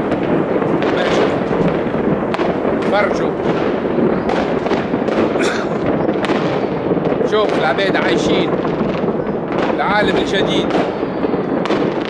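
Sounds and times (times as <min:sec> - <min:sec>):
crowd noise: 0:00.0 - 0:12.0
fireworks bangs: 0:00.0 - 0:12.0.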